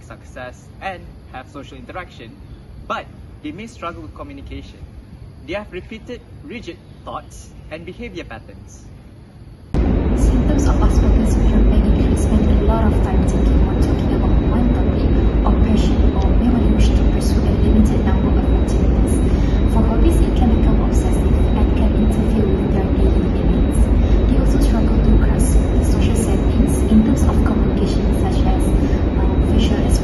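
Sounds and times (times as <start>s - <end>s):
loud low rumble: 9.7s - 30.0s
woman speaking: 10.1s - 30.0s.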